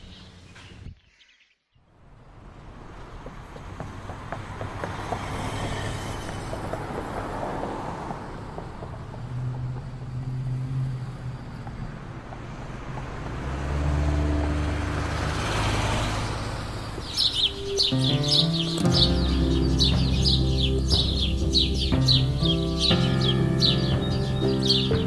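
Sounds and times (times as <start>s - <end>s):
street traffic engines: 1.9s - 25.0s
vehicle passing: 2.0s - 25.0s.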